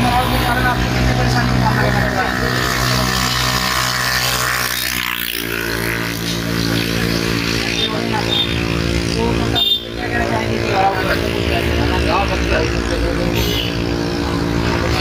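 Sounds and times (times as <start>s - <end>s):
vehicle engine running: 0.0s - 15.0s.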